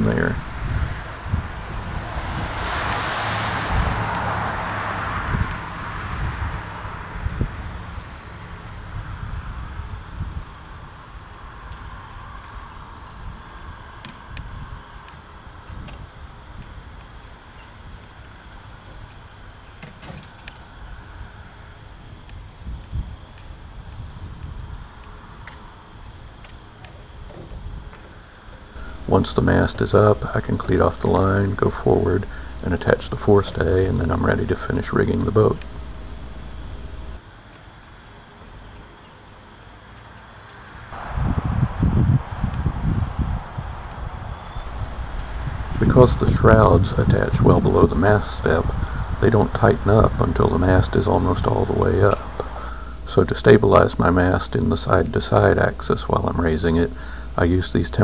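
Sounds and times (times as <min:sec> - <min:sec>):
low steady rumble: 0:00.0 - 0:03.0, 0:28.8 - 0:37.2, 0:41.0 - 0:56.7
road vehicle passing: 0:00.0 - 0:22.2, 0:28.1 - 0:52.7.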